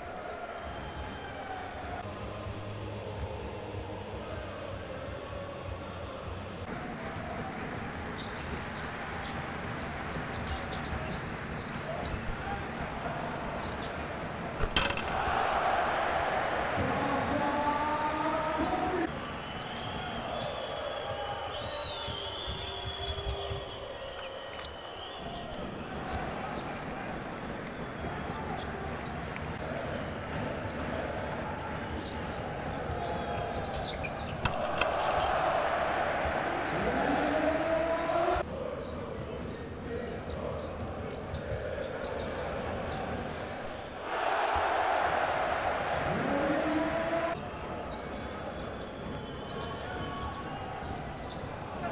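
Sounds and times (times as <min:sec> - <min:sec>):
arena crowd hum: 0:00.0 - 0:51.9
shoe squeaks: 0:32.0 - 0:35.2, 0:47.2 - 0:51.9.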